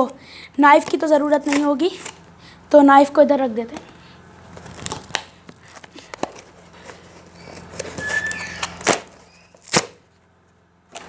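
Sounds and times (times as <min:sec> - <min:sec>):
cardboard box being opened: 0:04.6 - 0:09.8
squeak: 0:07.4 - 0:09.6.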